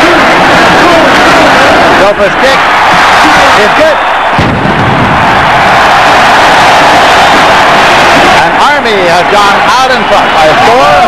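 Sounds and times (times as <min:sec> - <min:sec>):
stadium crowd cheering: 0:00.0 - 0:11.0
low boom: 0:04.4 - 0:05.6.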